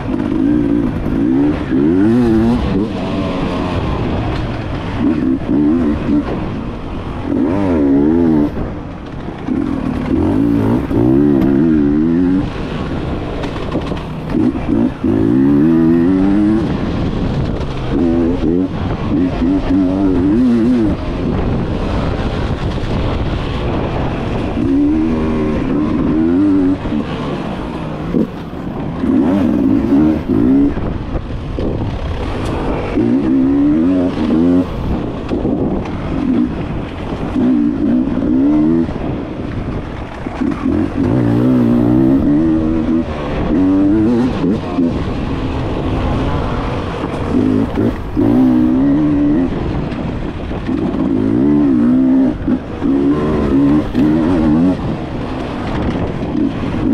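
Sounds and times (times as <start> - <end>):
motorcycle engine revving: 0.0 - 56.9.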